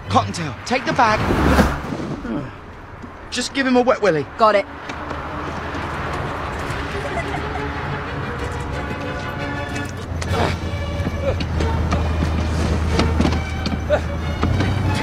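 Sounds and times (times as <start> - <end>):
engine humming: 0.0 - 15.0
orchestral score music: 4.6 - 15.0.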